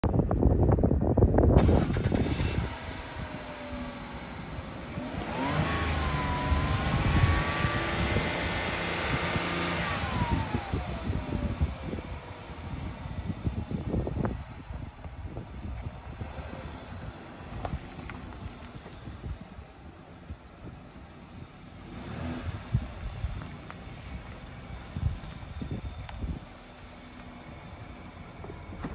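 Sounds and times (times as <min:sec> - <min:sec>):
wind buffeting microphone: 0:00.0 - 0:28.9
car engine revving: 0:01.6 - 0:14.8, 0:15.4 - 0:28.9.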